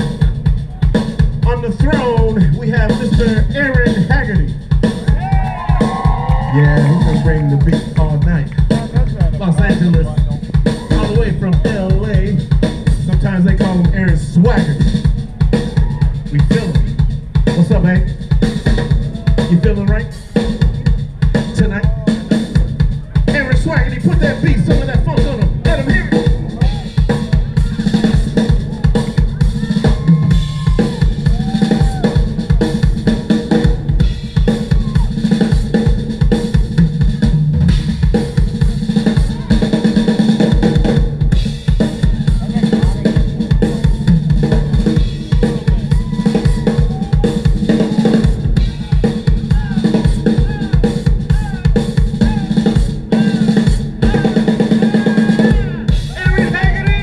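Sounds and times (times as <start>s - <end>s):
bass line: 0.0s - 57.0s
drum kit kick and snare: 0.0s - 57.0s
funk band playing: 0.0s - 57.0s.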